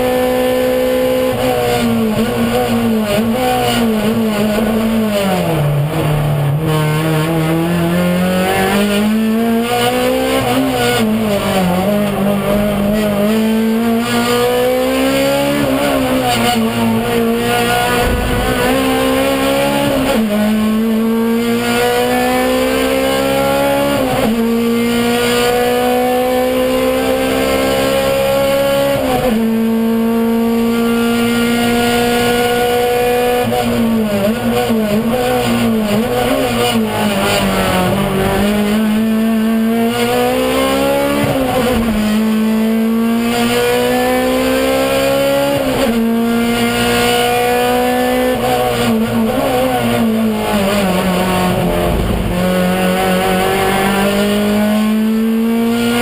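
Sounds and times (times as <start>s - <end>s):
race car engine at full throttle: 0.0s - 56.0s.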